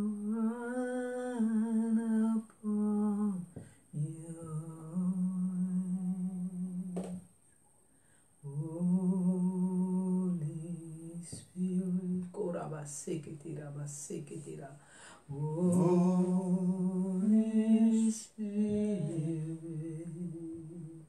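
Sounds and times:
person humming a slow tune: 0.0 - 7.2, 8.4 - 12.3, 15.3 - 21.0.

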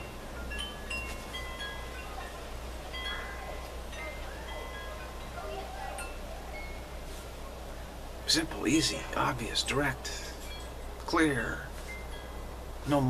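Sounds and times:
chimes ringing: 0.0 - 7.6, 8.2 - 13.0
steady low hum: 0.0 - 13.0.

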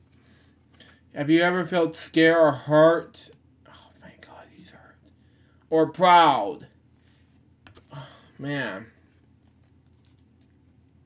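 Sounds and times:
low steady room hum: 0.0 - 11.0
cardboard book rustling: 8.9 - 11.0.

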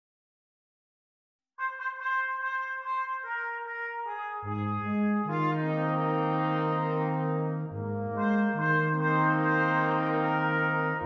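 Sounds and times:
brass ensemble playing: 1.6 - 11.0
solo trumpet notes: 1.6 - 11.0.

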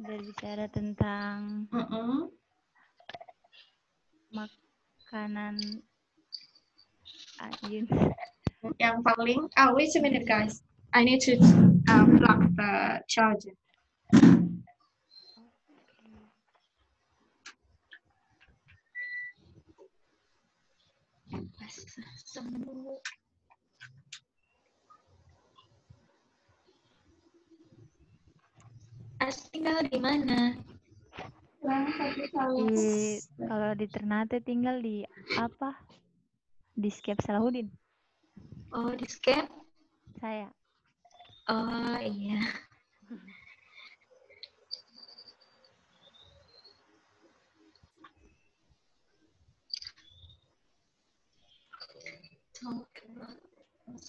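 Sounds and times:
faint high chirps and squeaks: 4.4 - 10.4, 14.7 - 16.8, 17.8 - 19.5, 41.0 - 47.0, 49.7 - 50.5, 51.3 - 54.0
low background hiss: 4.4 - 13.6, 31.6 - 35.8
low murmur: 31.6 - 34.2.

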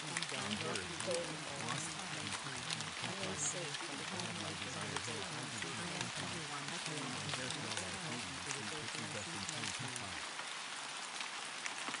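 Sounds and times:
droplet ticks: 0.0 - 10.2
low voice: 0.0 - 10.2
rain hiss: 0.0 - 12.0.

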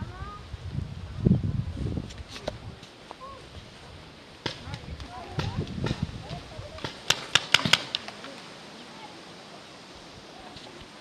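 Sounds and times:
paintball marker shots: 6.8 - 8.2.

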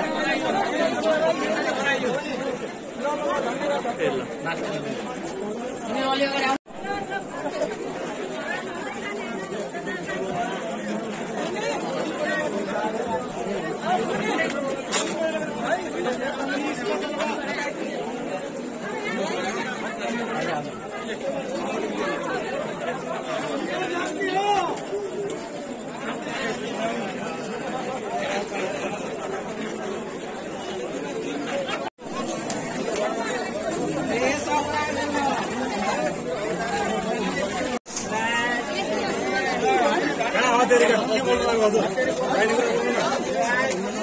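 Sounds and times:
overlapping crowd chatter: 0.0 - 44.0.

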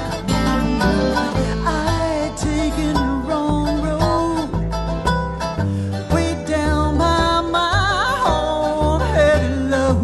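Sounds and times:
acoustic guitar plucked: 0.0 - 10.0
banjo: 0.0 - 10.0
mandolin: 0.0 - 10.0
upright bass notes: 0.0 - 10.0.

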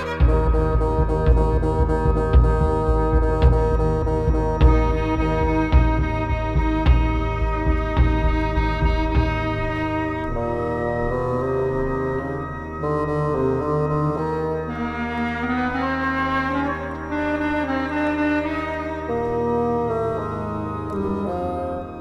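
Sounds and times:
low bass note: 0.0 - 17.8
woodwind and brass notes: 0.0 - 22.0.

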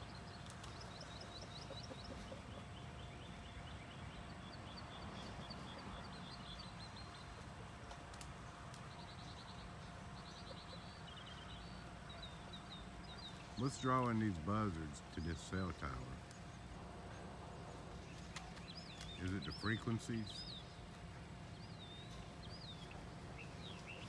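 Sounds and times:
birds chirping and trilling: 0.0 - 24.0
faint steady hum: 0.0 - 24.0
low outdoor rumble: 0.0 - 24.0.

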